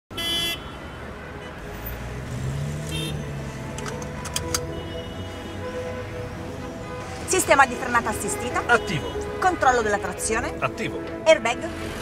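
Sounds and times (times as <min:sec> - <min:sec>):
car engine starting: 0:01.6 - 0:12.0
sharp clicks: 0:03.7 - 0:04.7.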